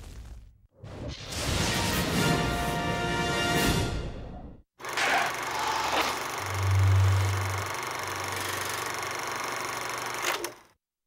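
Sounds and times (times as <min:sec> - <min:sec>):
low electronic hum: 0:05.6 - 0:08.7.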